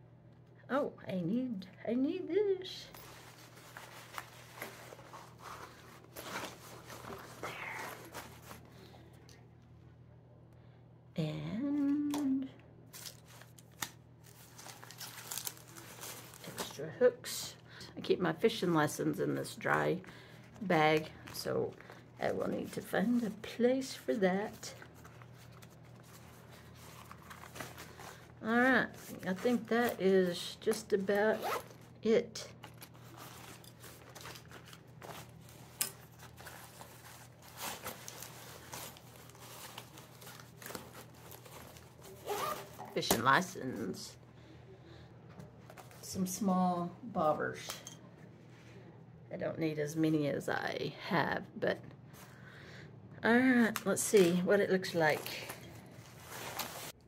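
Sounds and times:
fabric rustling and crinkling: 2.9s - 8.8s, 12.9s - 17.0s, 20.4s - 44.0s, 55.0s - 57.0s
woman humming: 11.3s - 12.6s.

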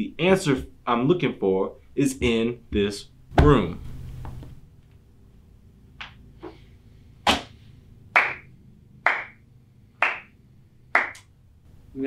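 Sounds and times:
slow handclap: 8.2s - 9.4s, 10.0s - 11.3s.

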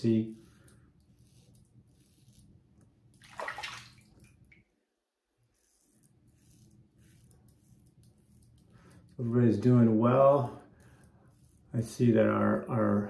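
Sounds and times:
razor scraping stubble: 0.0s - 2.9s, 5.4s - 13.0s.

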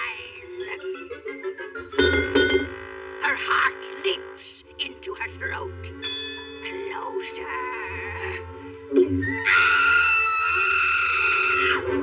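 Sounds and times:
orchestral underscore: 0.0s - 12.0s
cartoon cat screaming: 9.2s - 11.9s.

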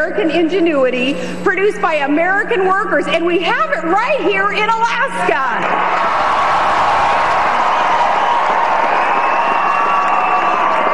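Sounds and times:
large crowd applauding and cheering: 5.6s - 10.9s.

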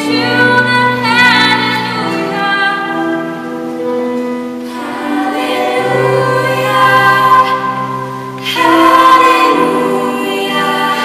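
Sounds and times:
string ensemble: 4.4s - 11.0s
girls singing together: 4.6s - 11.0s.

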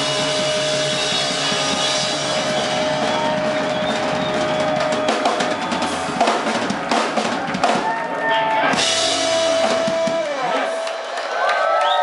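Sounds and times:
drum and cymbal hits: 0.0s - 8.0s, 8.7s - 11.8s
blues-rock band playing loudly: 0.0s - 11.3s.

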